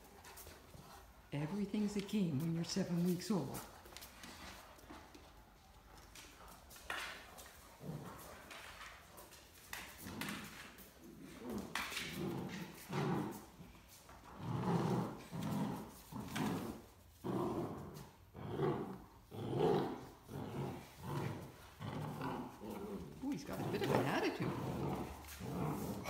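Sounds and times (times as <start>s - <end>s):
puppy growling: 6.9s - 8.9s, 9.7s - 26.0s.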